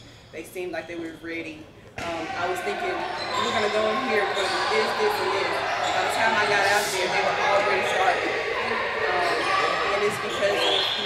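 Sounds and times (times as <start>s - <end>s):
woman talking into a microphone: 0.4s - 8.3s, 9.0s - 11.0s.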